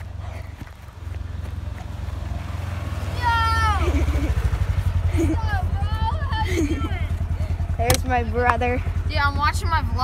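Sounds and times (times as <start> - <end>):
vehicle engine low pulsing rumble: 0.0 - 10.0.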